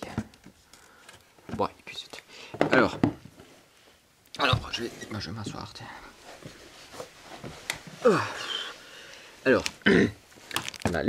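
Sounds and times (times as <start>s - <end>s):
camera handling rustling and knocks: 10.4s - 11.0s.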